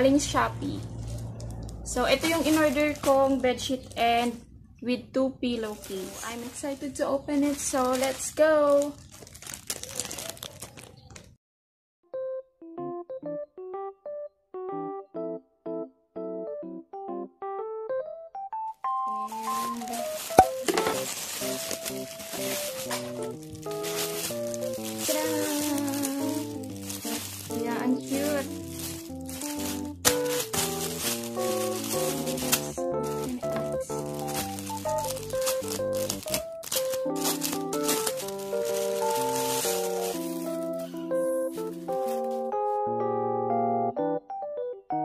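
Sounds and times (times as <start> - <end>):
background piano music: 0.0 - 8.8, 12.0 - 45.0
plastic packaging crinkling: 0.8 - 3.7, 5.5 - 11.4, 18.8 - 42.8.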